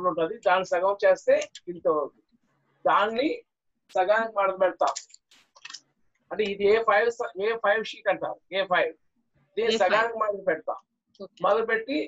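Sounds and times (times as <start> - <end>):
man talking: 0.0 - 2.1, 2.9 - 5.0, 6.3 - 9.0, 9.6 - 12.0.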